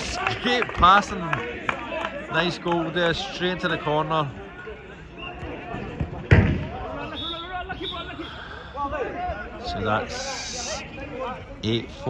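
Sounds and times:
players shouting and talking: 0.0s - 12.0s.

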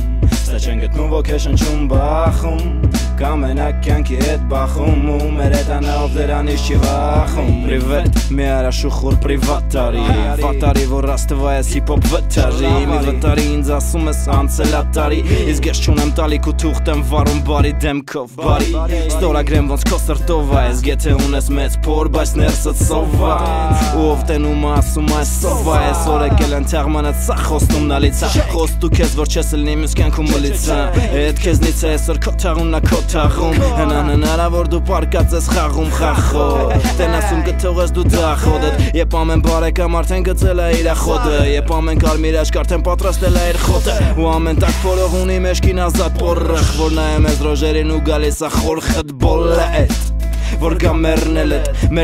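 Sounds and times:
deep sustained bass: 0.0s - 17.8s, 18.5s - 52.0s
rapping over a beat: 0.0s - 52.0s
drum hits: 1.6s - 3.2s, 6.8s - 8.5s, 18.5s - 18.9s, 19.5s - 21.5s, 22.4s - 26.7s, 27.6s - 29.3s, 30.0s - 31.9s, 32.6s - 34.5s, 35.2s - 37.3s, 38.0s - 39.7s, 43.3s - 44.9s.

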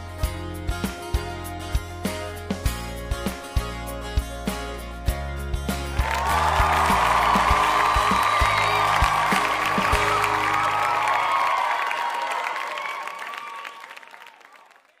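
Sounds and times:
background music with beat and bass: 0.0s - 11.0s.

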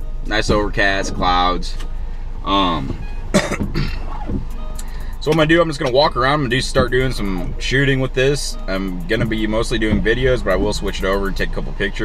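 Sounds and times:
man coughing: 3.3s - 4.1s.

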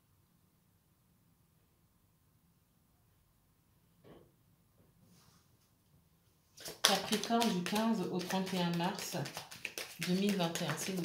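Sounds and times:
person speaking: 6.6s - 11.0s.

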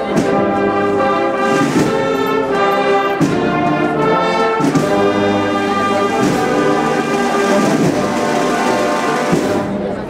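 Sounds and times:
brass band playing march: 0.0s - 10.0s.

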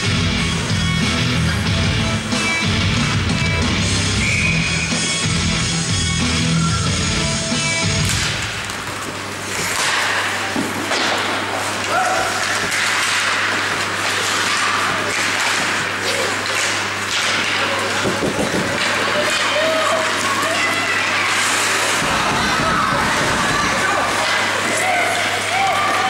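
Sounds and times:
rock music over speakers: 0.0s - 8.1s
crowd voices: 0.0s - 26.0s
skates scraping ice: 8.0s - 26.0s
sticks and puck knocking: 8.0s - 26.0s.

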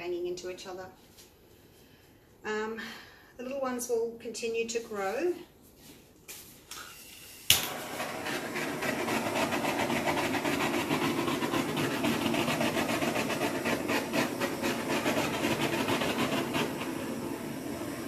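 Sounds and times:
gas torch hissing: 6.9s - 18.0s.

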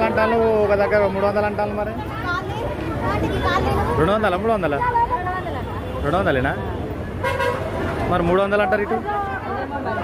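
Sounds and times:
street chatter: 0.0s - 10.0s.

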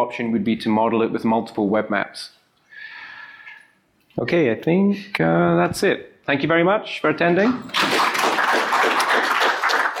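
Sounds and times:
audience applauding: 7.7s - 10.0s.

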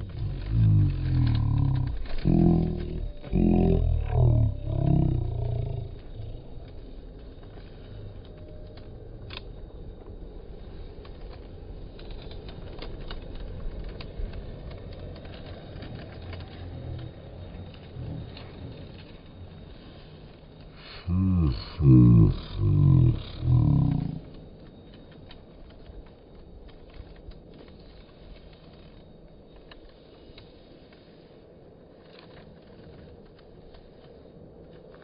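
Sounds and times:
man humming or grunting: 0.0s - 6.6s, 20.9s - 24.3s
low outdoor rumble: 0.0s - 35.0s.

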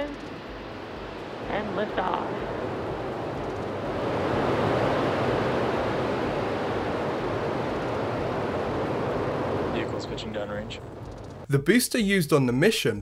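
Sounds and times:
rocket engines rumbling: 0.0s - 12.7s.

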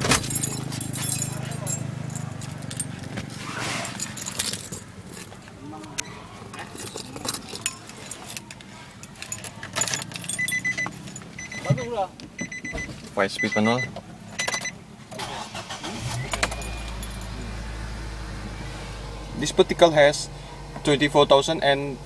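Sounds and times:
car engine idling: 0.0s - 22.0s
high electronic beeps: 10.4s - 14.8s.

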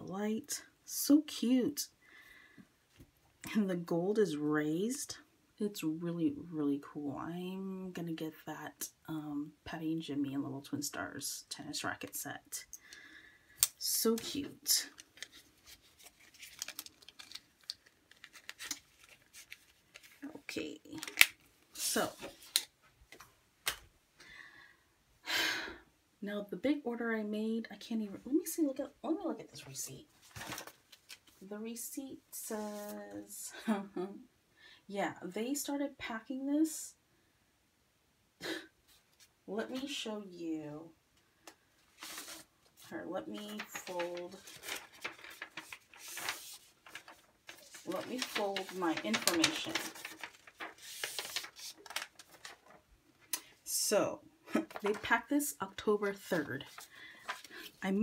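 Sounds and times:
paper receipt being folded: 14.8s - 20.3s, 42.0s - 42.5s, 43.4s - 52.8s, 56.6s - 57.8s
soft rustle: 14.9s - 20.5s, 32.4s - 33.3s, 41.8s - 52.8s.

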